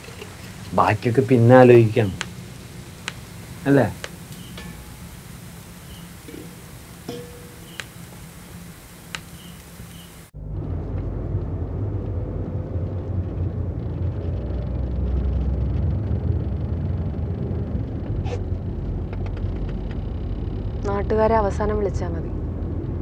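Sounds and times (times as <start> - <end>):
car engine and road rumble: 0.0 - 23.0
faint clicks: 2.0 - 10.3.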